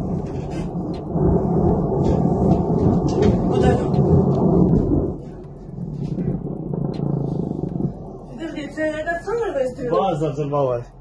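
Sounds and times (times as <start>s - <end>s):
distant explosion rumble: 0.0s - 11.0s.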